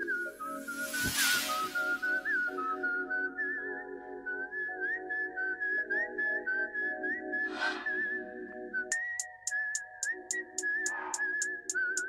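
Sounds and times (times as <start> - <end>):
whistled melody: 0.0 - 12.0.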